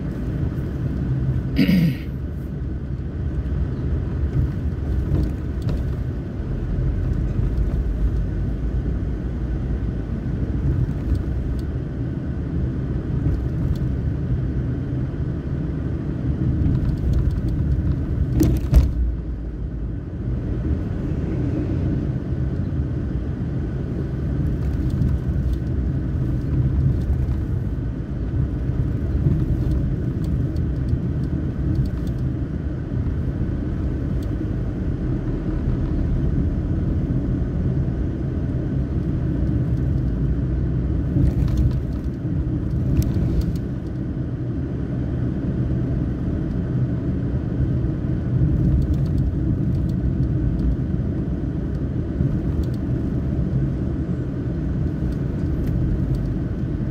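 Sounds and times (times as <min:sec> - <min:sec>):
vehicle rumble on road: 0:00.0 - 0:56.9.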